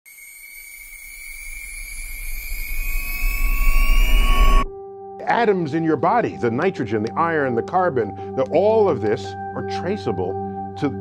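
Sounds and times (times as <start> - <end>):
high tone gliding upward: 0.1 - 4.8.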